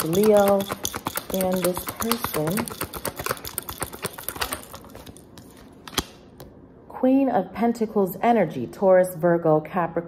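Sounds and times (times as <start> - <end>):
cards being shuffled: 1.8 - 6.2.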